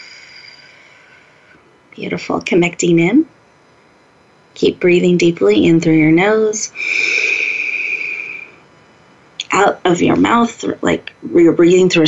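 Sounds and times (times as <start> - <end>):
breathy exhale through lips: 6.8 - 8.6.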